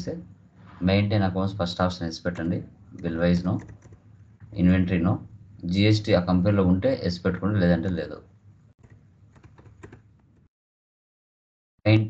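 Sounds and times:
computer keyboard keystrokes: 2.4s - 4.0s, 8.8s - 10.2s.

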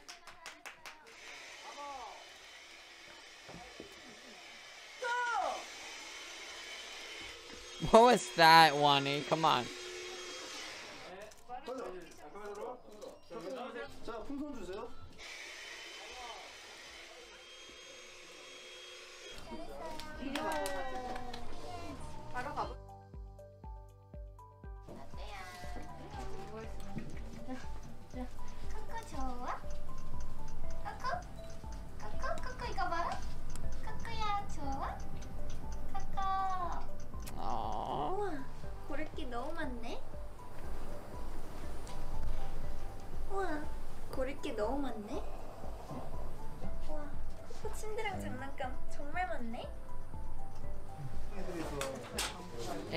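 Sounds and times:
light background music: 4.5s - 52.9s.

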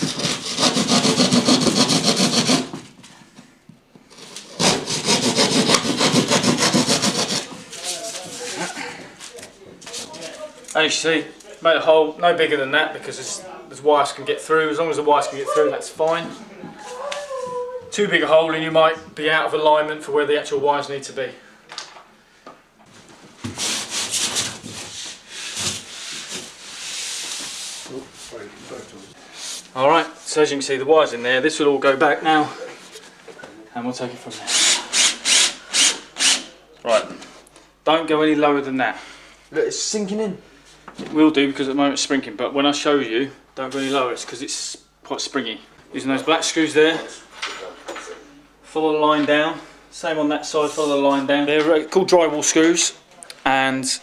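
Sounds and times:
hand saw cutting plasterboard: 0.0s - 2.8s, 4.1s - 7.8s, 34.5s - 36.4s.

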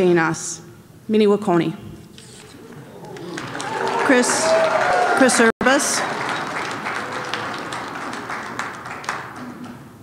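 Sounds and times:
audience applauding: 2.5s - 9.9s.

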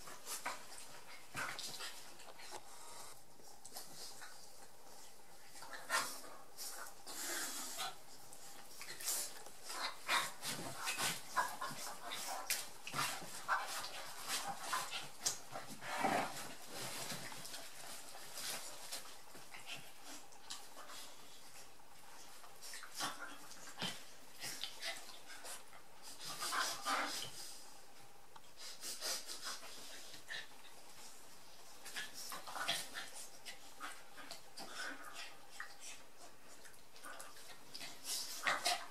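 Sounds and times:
dogs play-fighting noises: 0.0s - 28.0s, 28.6s - 38.9s
dogs scuffling: 7.8s - 27.6s.

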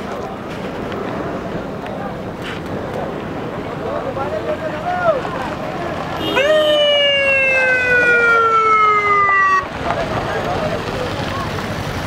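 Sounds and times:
voices: 0.0s - 12.0s
siren wailing: 6.3s - 9.8s.

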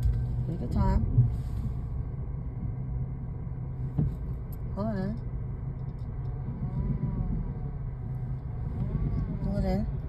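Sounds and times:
car engine running low hum: 0.0s - 10.0s.

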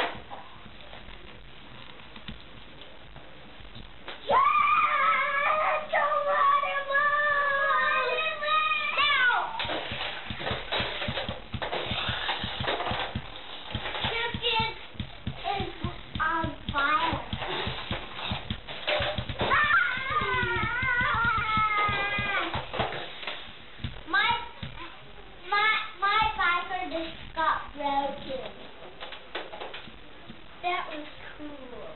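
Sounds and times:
children singing and humming: 4.4s - 9.4s.

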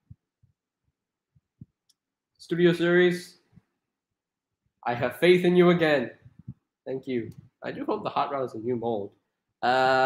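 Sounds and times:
faint low thuds: 6.2s - 6.6s.

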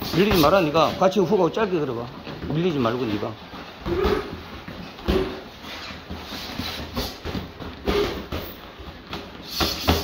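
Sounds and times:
boxing gloves thudding: 3.5s - 10.0s
short forced breaths: 5.0s - 8.3s, 9.3s - 10.0s.

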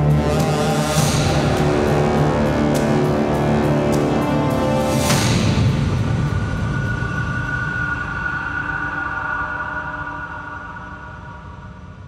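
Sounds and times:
low rumbling drone: 0.0s - 12.0s
sustained high tones: 6.6s - 12.0s.

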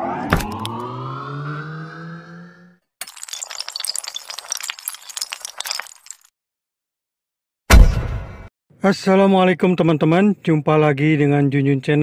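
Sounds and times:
rising tone with overtones: 0.0s - 2.8s.

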